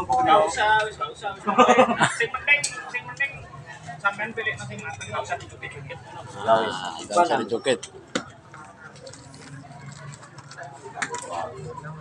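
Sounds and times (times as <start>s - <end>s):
faint background chatter: 0.0s - 12.0s.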